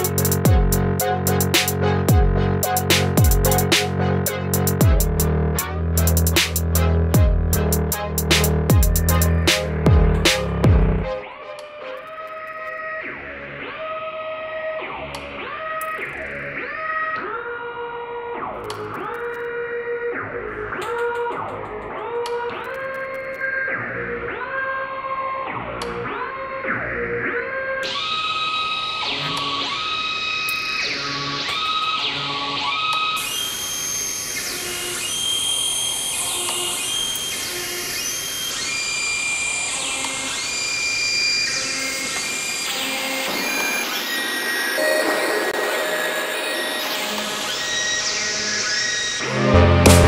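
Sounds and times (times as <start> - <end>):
electronic dance music: 0.0 - 14.7, 44.8 - 50.0
noise sweep: 42.3 - 50.0.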